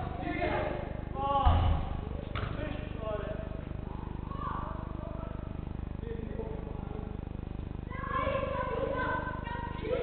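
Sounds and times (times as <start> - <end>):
low pulsing hum: 0.0 - 10.0.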